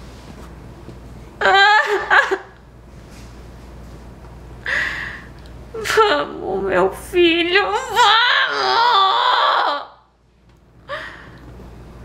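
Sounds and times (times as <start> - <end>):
high wavering crying voice: 1.4 - 2.5, 7.6 - 10.1.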